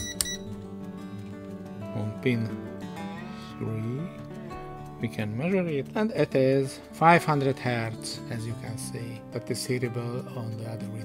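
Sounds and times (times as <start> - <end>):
short high beep: 0.0 - 0.5
background music: 0.0 - 11.0.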